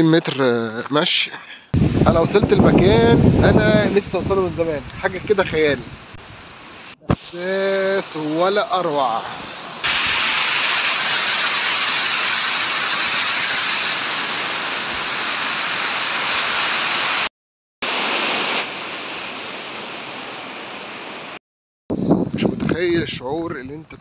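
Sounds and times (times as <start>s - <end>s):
waterfall rushing over rocks: 9.4s - 21.4s.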